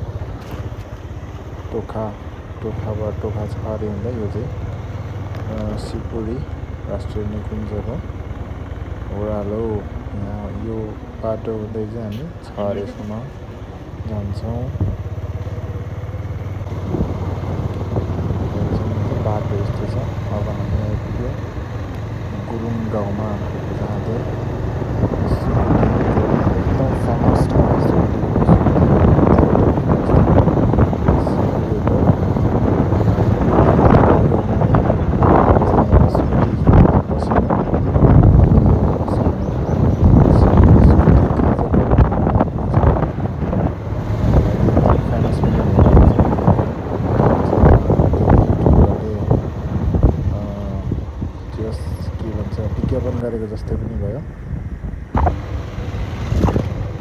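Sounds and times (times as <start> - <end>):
motorcycle engine running: 0.0 - 53.8, 54.6 - 57.0
wind buffeting microphone: 0.0 - 57.0.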